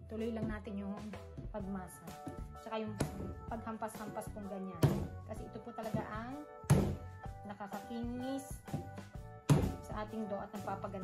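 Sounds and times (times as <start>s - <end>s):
background music: 0.0s - 11.0s
dough slapped on wooden table: 4.8s - 5.2s, 6.7s - 7.1s, 9.5s - 9.9s.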